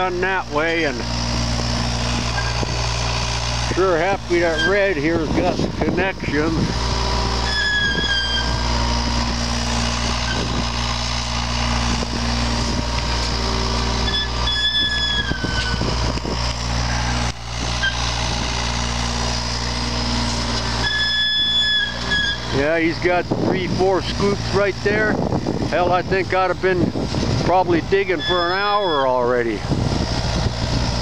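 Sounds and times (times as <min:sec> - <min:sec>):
excavator diesel engine: 0:00.0 - 0:31.0
high squeal: 0:02.3 - 0:02.8, 0:04.3 - 0:05.0, 0:07.4 - 0:09.0, 0:10.2 - 0:10.6, 0:14.0 - 0:16.0, 0:16.9 - 0:18.2, 0:20.6 - 0:22.6, 0:27.9 - 0:29.6.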